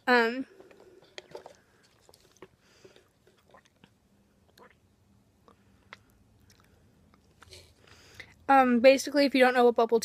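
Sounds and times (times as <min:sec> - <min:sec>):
soft chewing mouth clicks: 0:00.7 - 0:08.4.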